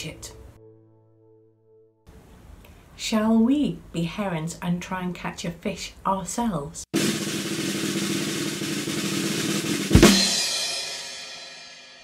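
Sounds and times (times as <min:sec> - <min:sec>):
snare drum roll: 0:07.0 - 0:11.0.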